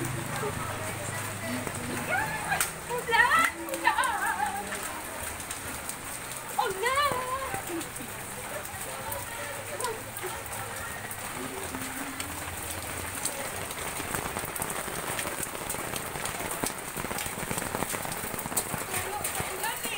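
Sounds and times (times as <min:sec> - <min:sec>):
rain drops ticking on hard surfaces: 0:00.0 - 0:19.9.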